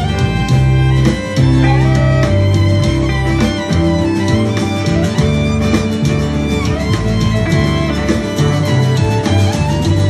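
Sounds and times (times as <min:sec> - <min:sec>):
acoustic guitar: 0:00.0 - 0:10.0
bowed fiddle: 0:00.0 - 0:10.0
keyboard: 0:00.0 - 0:10.0.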